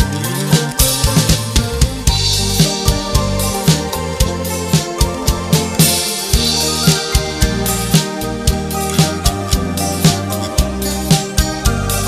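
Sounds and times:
steady drum beat: 0:00.0 - 0:12.0
sustained band chords: 0:00.0 - 0:12.0.

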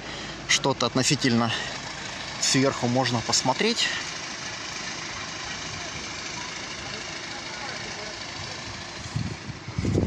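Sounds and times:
traffic engines humming: 0:00.0 - 0:10.0.

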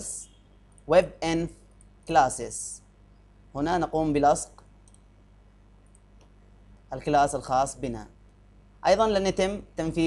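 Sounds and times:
low room hum: 0:00.0 - 0:10.0
computer mouse clicks: 0:04.5 - 0:05.1, 0:05.8 - 0:06.4.

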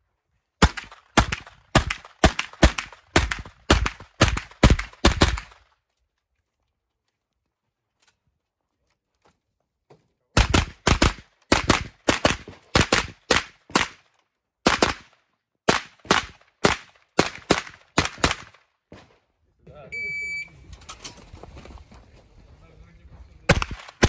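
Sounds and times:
rapid carbine gunshots: 0:00.6 - 0:05.6, 0:10.4 - 0:14.0, 0:14.6 - 0:15.1, 0:15.7 - 0:18.6, 0:23.5 - 0:24.0
shot timer beep: 0:19.9 - 0:20.5.

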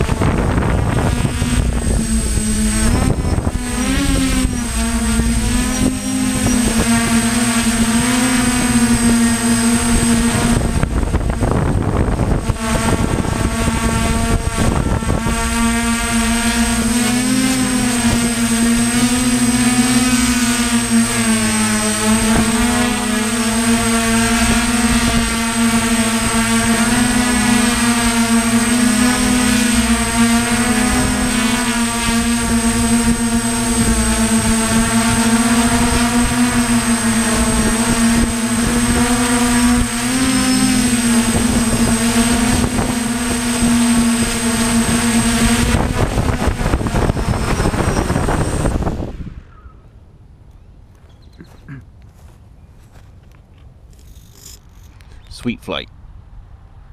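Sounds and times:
drone motors buzzing: 0:00.0 - 0:49.8, 0:50.9 - 0:55.7
wind gusts on microphone: 0:00.0 - 0:49.8.

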